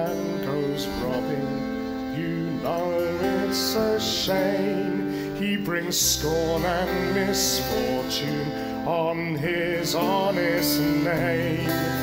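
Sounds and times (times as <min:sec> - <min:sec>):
instrumental accompaniment: 0:00.0 - 0:12.0
man singing a folk ballad: 0:00.0 - 0:12.0.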